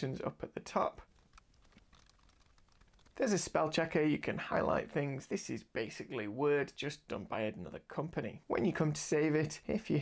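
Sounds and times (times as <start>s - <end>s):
laptop keyboard typing: 1.1s - 3.2s.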